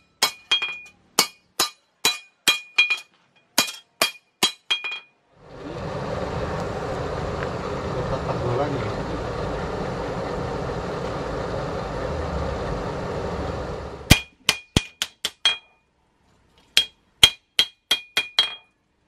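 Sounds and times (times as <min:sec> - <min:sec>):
air rushing through forge: 0:05.4 - 0:14.1.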